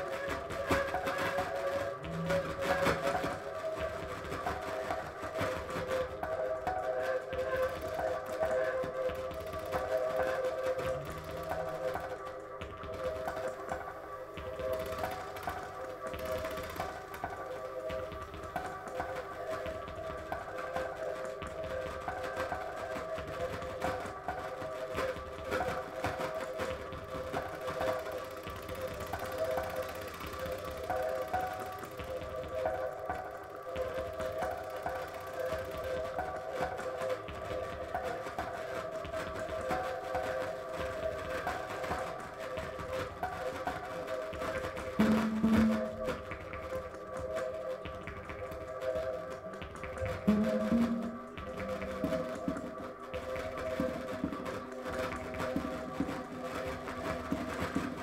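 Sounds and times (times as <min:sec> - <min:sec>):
synthesiser drone: 0:45.0 - 0:46.6, 0:50.3 - 0:52.8.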